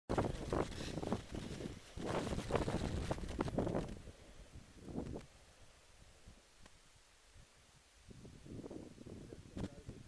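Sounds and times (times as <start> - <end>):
snowboard hissing through snow: 0.1 - 4.4
wind buffeting microphone: 0.1 - 5.3, 8.1 - 10.0.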